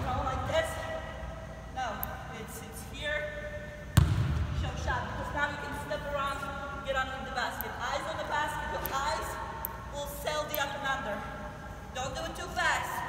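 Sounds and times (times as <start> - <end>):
basketball bouncing on hardwood: 4.0 - 4.4.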